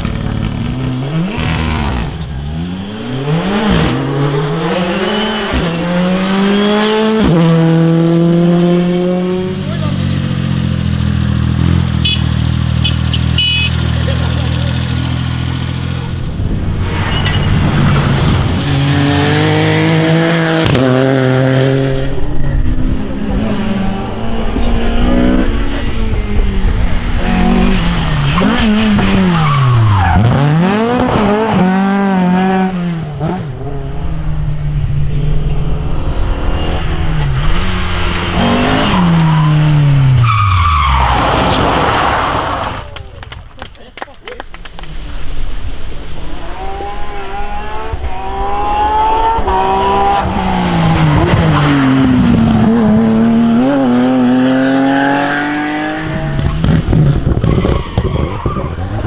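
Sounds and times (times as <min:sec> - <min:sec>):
rally car engines at full throttle: 0:00.0 - 0:59.0.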